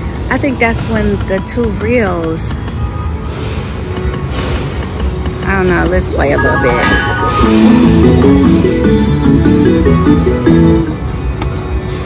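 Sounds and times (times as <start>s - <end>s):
slot machine game music: 6.2s - 11.0s.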